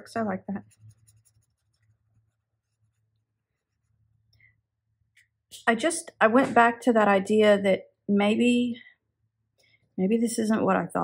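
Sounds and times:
brush pen scratching on paper: 0.5 - 4.1.

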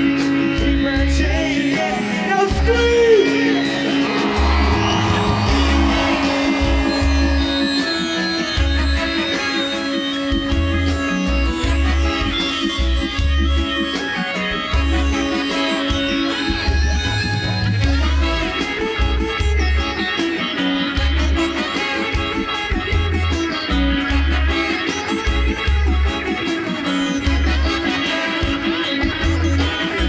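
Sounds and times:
bass line: 0.0 - 20.0, 22.2 - 26.4, 27.0 - 30.0
melodica melody: 0.0 - 30.0
reggae band playing: 0.0 - 30.0.

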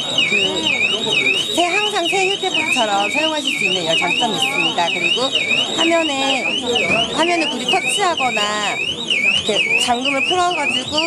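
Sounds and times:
electronic alarm sweeping tone: 0.0 - 11.0
voices: 0.0 - 11.0.

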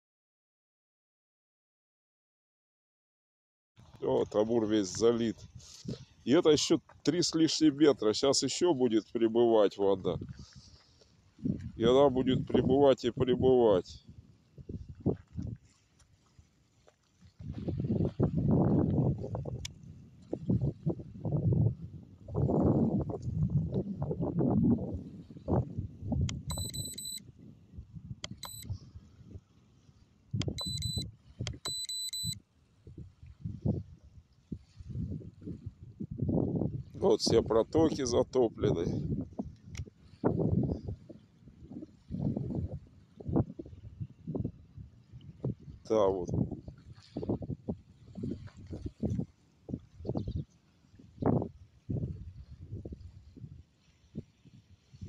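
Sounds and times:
wind buffeting microphone: 3.8 - 15.8, 17.2 - 31.8, 32.7 - 55.0
rapid high-pitched electronic beeping: 26.5 - 27.2, 30.6 - 31.0.

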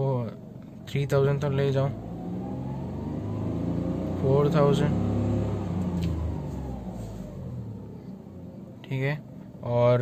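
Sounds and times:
car engine revs falling: 1.2 - 8.8.

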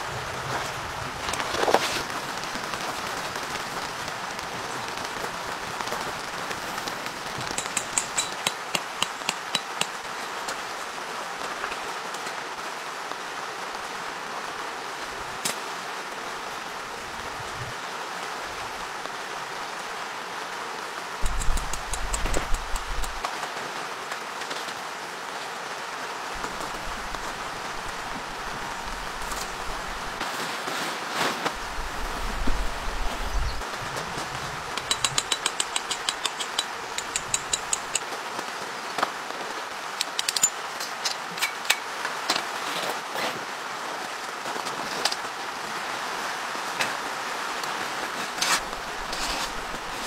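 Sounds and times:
steady rain: 0.0 - 50.0
sharp clicks: 21.2 - 23.2, 34.8 - 38.0.

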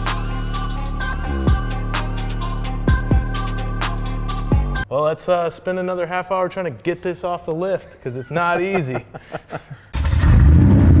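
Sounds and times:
person laughing: 7.9 - 9.9
engine rumble and rev effect: 10.0 - 11.0.

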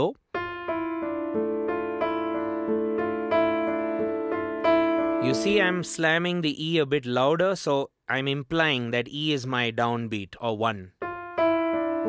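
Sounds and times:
slow low piano theme: 0.3 - 6.2, 11.0 - 12.0.

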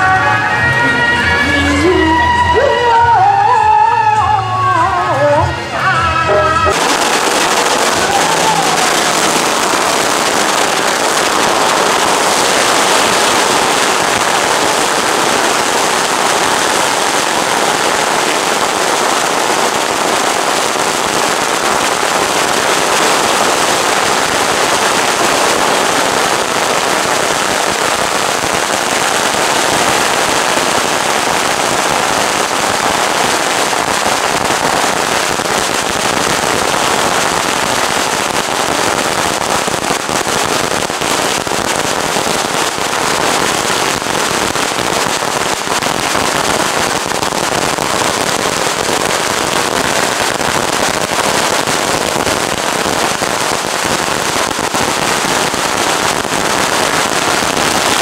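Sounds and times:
firecrackers crackling: 0.0 - 2.0, 6.3 - 58.0.

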